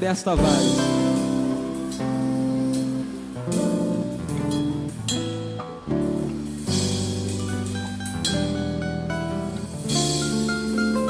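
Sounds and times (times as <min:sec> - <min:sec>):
drums: 0:00.0 - 0:11.0
guitar: 0:00.0 - 0:11.0.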